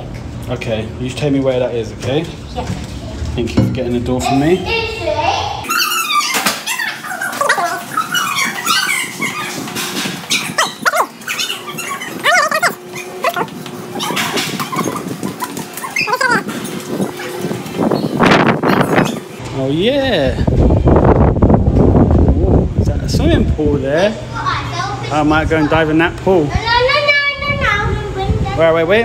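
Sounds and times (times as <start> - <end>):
children squealing: 5.6 - 16.7.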